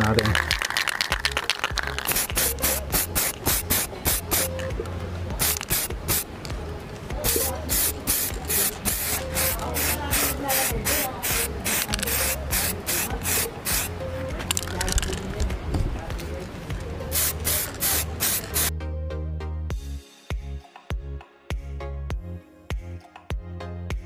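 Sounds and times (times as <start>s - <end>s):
spray paint can hissing: 0.0s - 4.7s, 5.4s - 6.3s, 7.2s - 15.4s, 17.1s - 18.7s.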